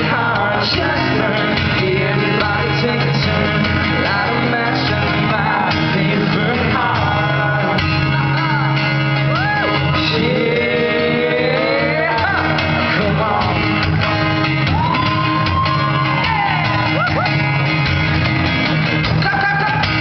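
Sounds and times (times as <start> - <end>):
man singing: 0.0 - 14.3, 19.0 - 20.0
strummed acoustic guitar: 0.0 - 20.0.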